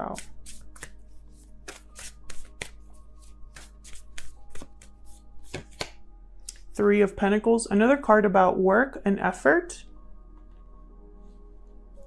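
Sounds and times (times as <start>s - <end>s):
cards being shuffled by hand: 0.0s - 6.0s
soft background music: 0.0s - 12.0s.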